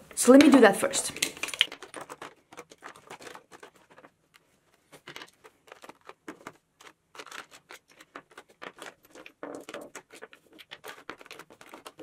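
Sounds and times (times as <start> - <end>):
makeup items clicking on tabletop: 0.2 - 12.0.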